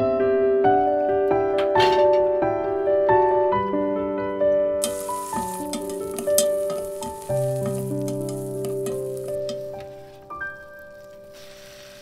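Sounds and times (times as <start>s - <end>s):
soft piano music: 0.0s - 12.0s
mussels sizzling in hot oil: 4.8s - 12.0s.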